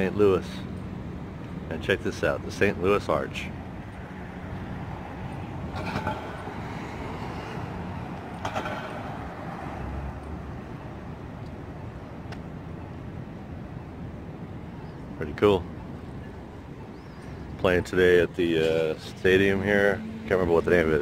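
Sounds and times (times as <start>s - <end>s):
city street traffic: 0.0s - 21.0s.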